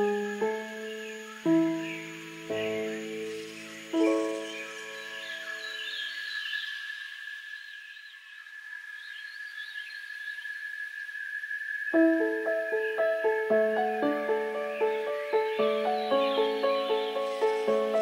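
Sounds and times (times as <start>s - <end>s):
soft piano chords: 0.0s - 5.9s, 12.0s - 18.0s
birds chirping: 0.0s - 8.3s, 11.9s - 18.0s
high insect buzz: 0.0s - 18.0s.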